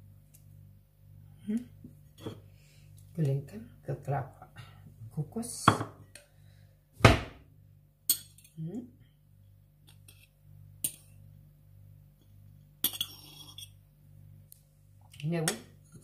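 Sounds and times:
fork scraping a ceramic plate: 0:12.9 - 0:13.8.

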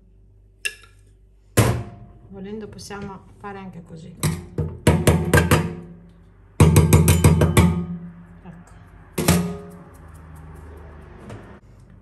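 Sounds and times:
loud metal clank: 0:09.2 - 0:09.8.

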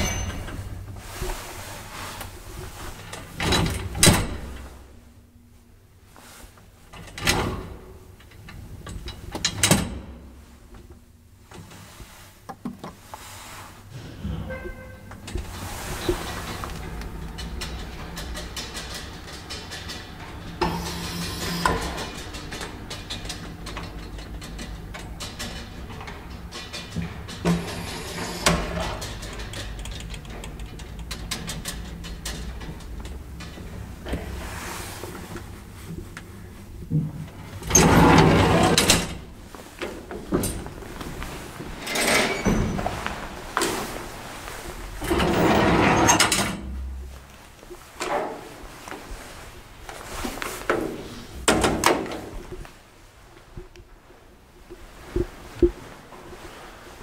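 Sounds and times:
elevator gate clacking shut: 0:00.0 - 0:00.8, 0:14.0 - 0:34.3
elevator hum and rumble: 0:00.0 - 0:12.4, 0:13.0 - 0:57.0.

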